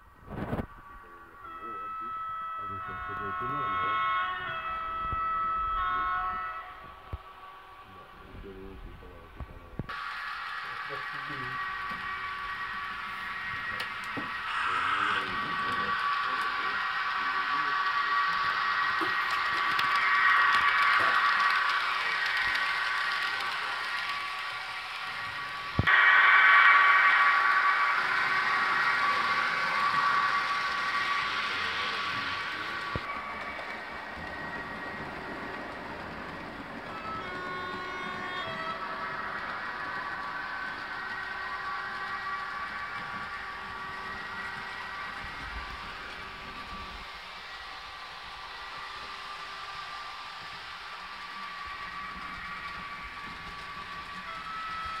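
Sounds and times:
model locomotive electric hum: 0.0 - 55.0
model wheels on track: 2.9 - 55.0.

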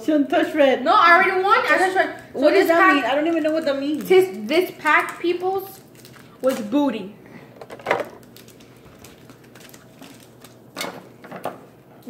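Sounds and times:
foil wrappers rustling: 1.7 - 6.9, 7.6 - 11.3.

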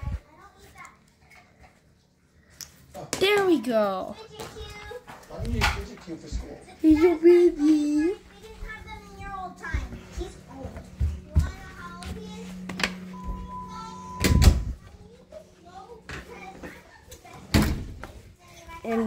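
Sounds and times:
steady low hum: 6.2 - 16.9.

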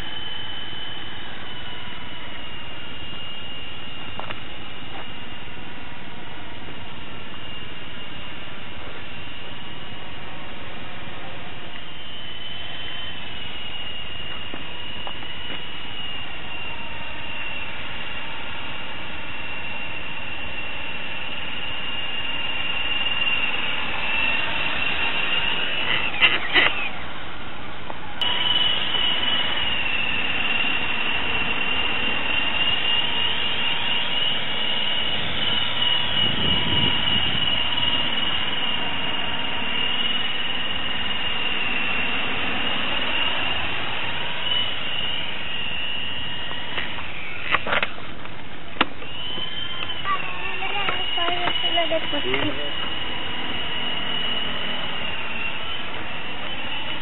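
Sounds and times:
radio-controlled helicopter whine: 0.0 - 57.0.

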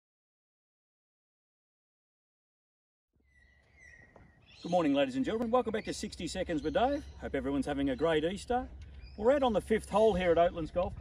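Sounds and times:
bird calling high note: 3.2 - 9.9.

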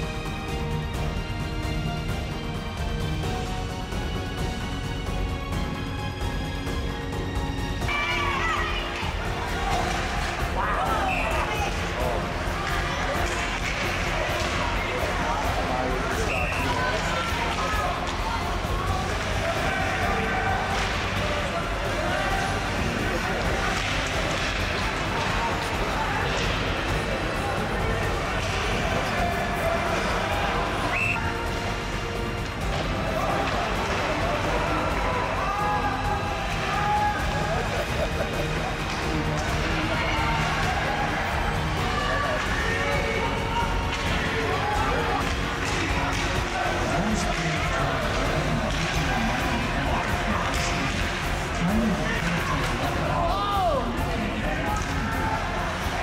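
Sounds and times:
background music: 0.0 - 56.0
ice hockey game noise: 0.0 - 56.0
indistinct shouting voices: 7.8 - 32.0, 32.7 - 56.0.

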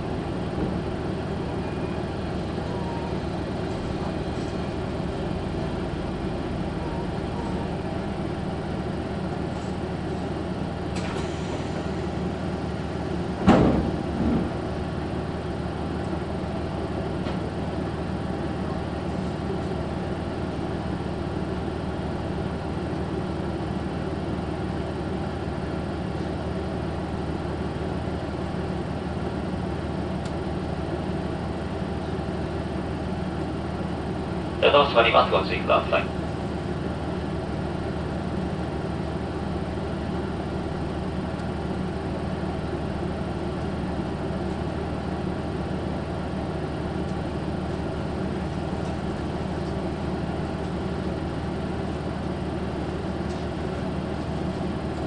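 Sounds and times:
train engine droning: 0.0 - 55.0.

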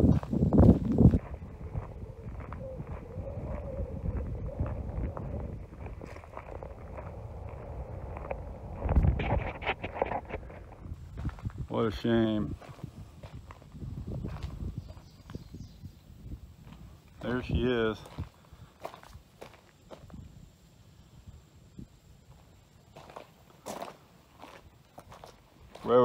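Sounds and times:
footsteps through grass and gravel: 0.0 - 15.6, 16.6 - 20.3, 22.4 - 26.0
low outdoor background: 0.0 - 26.0.

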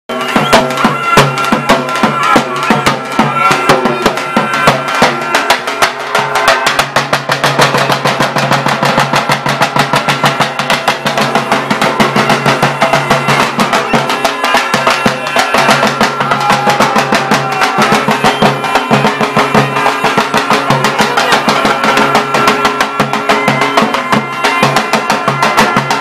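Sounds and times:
sustained pitched melody: 0.1 - 6.8.

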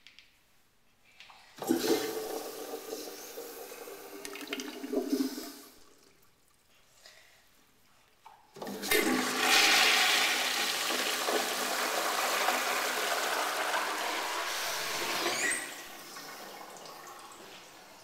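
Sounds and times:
toilet flushing: 1.6 - 6.5, 8.6 - 18.0.

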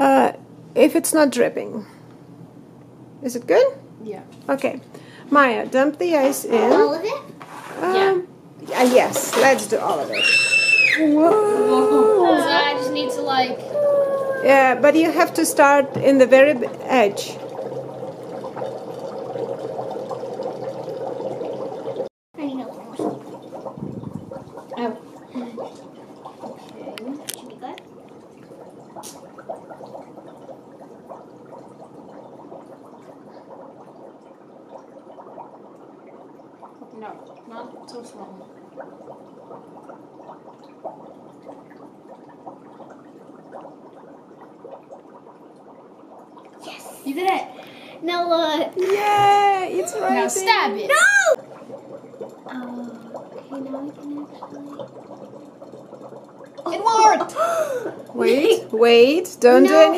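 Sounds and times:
dry ice bubbling in water: 0.0 - 59.9.

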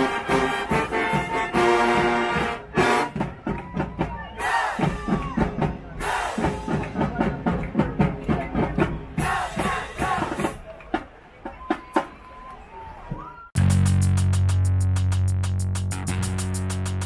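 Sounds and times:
brass chord: 0.0 - 3.2
drum line cadence: 0.0 - 17.0
crowd shouting: 1.9 - 7.4, 8.9 - 13.6.

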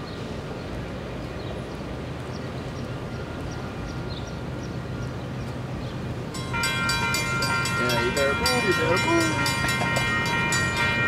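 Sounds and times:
railroad crossing warning bell: 6.3 - 11.0.

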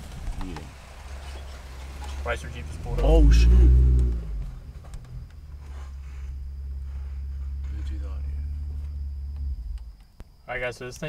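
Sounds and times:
vehicle engine idling: 0.0 - 10.5.

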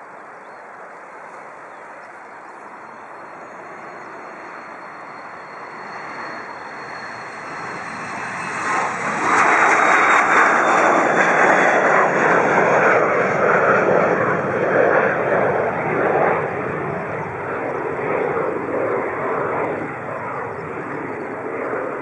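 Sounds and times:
faint high jet whine: 0.0 - 22.0
jet engines roaring at takeoff: 0.1 - 22.0.

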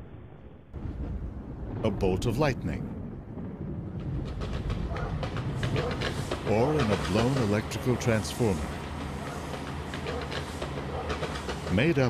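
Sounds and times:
faint crackles: 2.0 - 12.0.

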